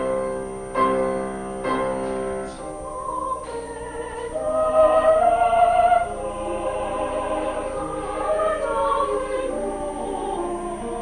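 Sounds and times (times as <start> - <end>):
mixed choir singing: 2.0 - 11.0.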